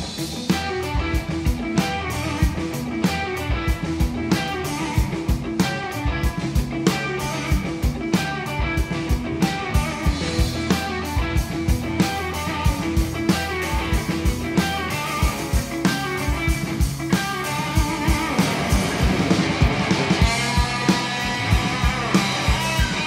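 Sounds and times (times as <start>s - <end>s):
bass guitar: 0.0s - 23.0s
drum kit beat: 0.0s - 23.0s
electric guitars: 0.0s - 23.0s.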